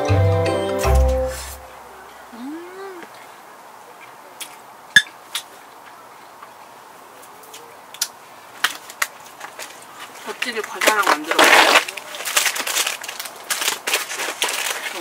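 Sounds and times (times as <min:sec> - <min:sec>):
background music: 0:00.0 - 0:02.0.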